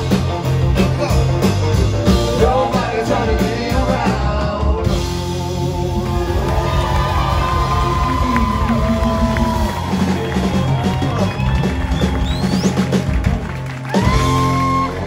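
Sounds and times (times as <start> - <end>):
live rock blues band playing: 0.0 - 15.0.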